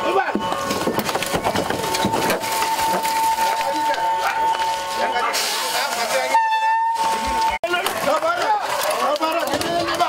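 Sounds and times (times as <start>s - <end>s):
crowd of people talking: 0.0s - 10.0s
train horn steady tone: 2.7s - 7.6s.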